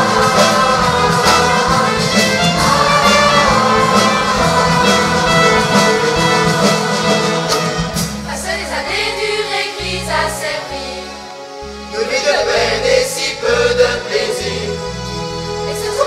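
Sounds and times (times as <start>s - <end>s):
drum kit: 0.0s - 8.7s
held bass notes: 0.0s - 10.4s
keyboards: 0.0s - 16.0s.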